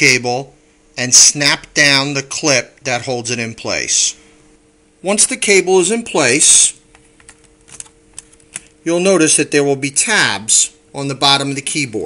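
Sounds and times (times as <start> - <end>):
faint steady hum: 0.0 - 12.0
laptop keyboard clicks and taps: 6.9 - 8.7.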